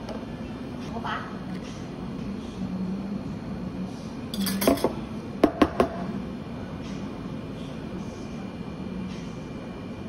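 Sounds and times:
low steady hum: 0:00.0 - 0:10.0
metal spoon clinking on milk pitcher: 0:04.4 - 0:04.9.

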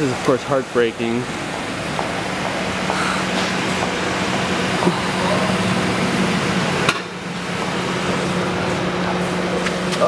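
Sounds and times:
indistinct voices: 0:00.0 - 0:06.9
steady low hum: 0:00.0 - 0:10.0.

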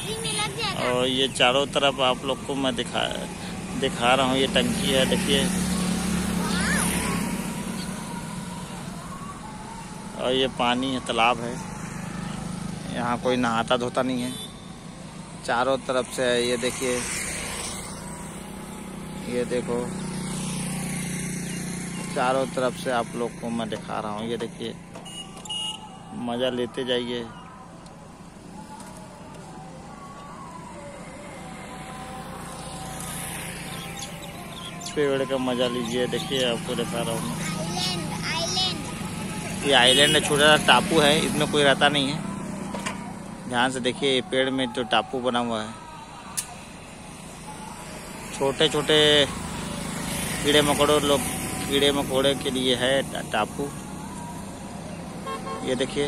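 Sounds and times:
passing vehicle engine hum: 0:00.0 - 0:56.0.

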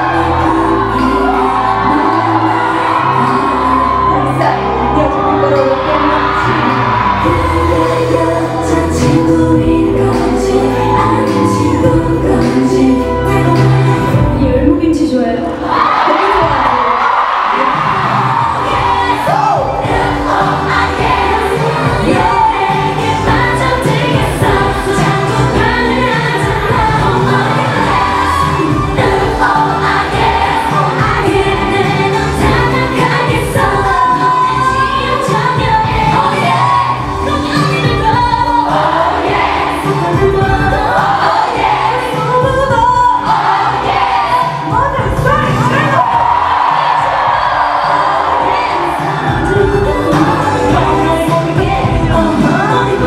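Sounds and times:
women singing into microphones: 0:00.0 - 0:16.6, 0:18.3 - 0:53.0
backing track with steady beat: 0:18.4 - 0:53.0.

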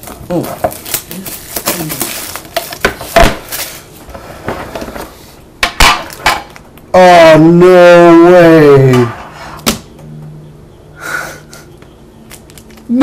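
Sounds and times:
card packs rustling: 0:00.0 - 0:04.1, 0:12.3 - 0:13.0.

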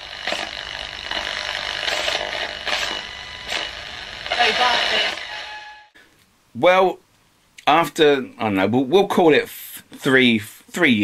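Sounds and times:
radio static hiss surging: 0:00.0 - 0:06.0.

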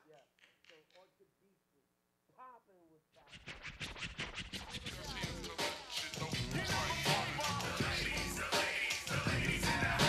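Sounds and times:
hip-hop music: 0:03.2 - 0:10.0
vinyl record scratching: 0:03.2 - 0:10.0.

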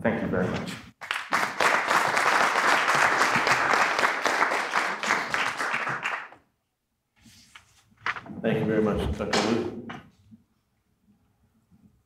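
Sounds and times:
audience applauding: 0:01.0 - 0:06.4.

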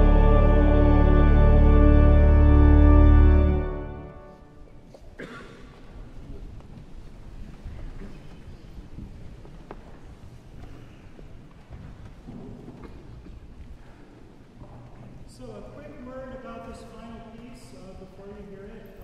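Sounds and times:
organ chord: 0:00.0 - 0:04.7
congregation shuffling and rustling: 0:00.0 - 0:19.0
wooden pews knocking and creaking: 0:08.2 - 0:13.7.

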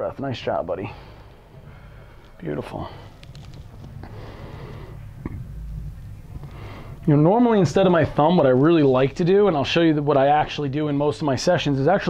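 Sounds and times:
low room hum: 0:00.0 - 0:12.0
man breathing deeply: 0:00.8 - 0:07.1.

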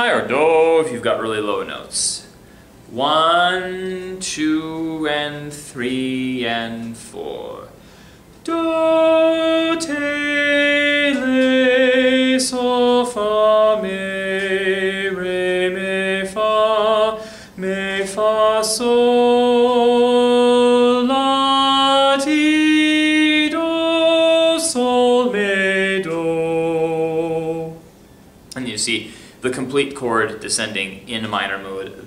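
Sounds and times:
man singing solfege syllables: 0:00.0 - 0:07.8, 0:08.4 - 0:27.9.

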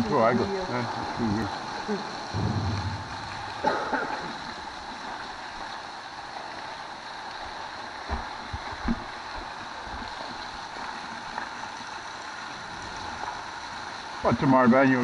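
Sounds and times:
stream rushing: 0:02.3 - 0:04.5
low knocks: 0:02.4 - 0:04.3.

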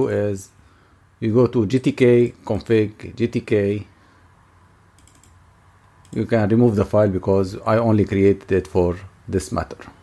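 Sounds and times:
low steady hum: 0:00.0 - 0:10.0
faint computer clicks: 0:05.0 - 0:06.3.

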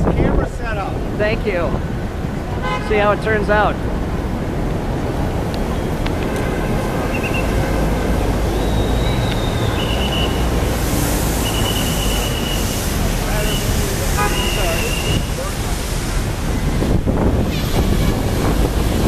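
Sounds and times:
wind rumbling on microphone: 0:00.0 - 0:02.6, 0:14.9 - 0:19.0
city traffic: 0:00.0 - 0:19.0
short high-pitched squeals: 0:08.5 - 0:12.8.

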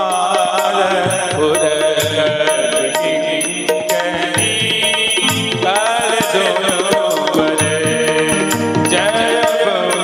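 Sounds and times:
man singing devotional song: 0:00.0 - 0:10.0
percussion strikes: 0:00.0 - 0:10.0.

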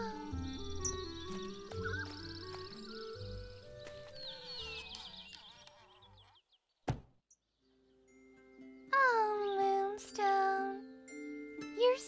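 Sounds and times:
cartoon background music: 0:00.0 - 0:05.4, 0:07.8 - 0:12.0
sharp knock: 0:06.9 - 0:07.1.

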